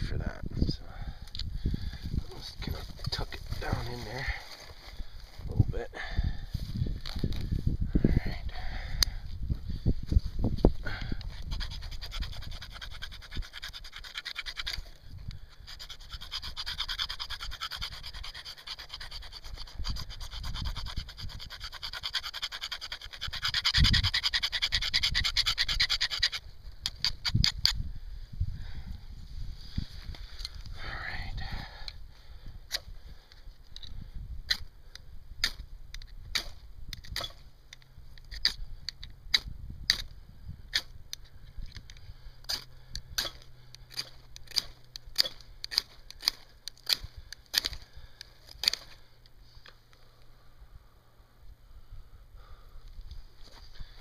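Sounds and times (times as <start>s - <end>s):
blade striking flint rod: 11.3s - 27.8s, 34.5s - 34.7s, 35.4s - 37.5s, 38.2s - 49.0s
knife scraping metal block: 15.7s - 26.4s.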